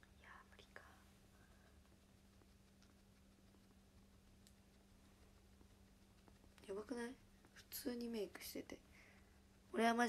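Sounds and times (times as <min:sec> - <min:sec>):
woman whispering faintly: 0:00.0 - 0:01.6
faint low hum: 0:00.0 - 0:10.0.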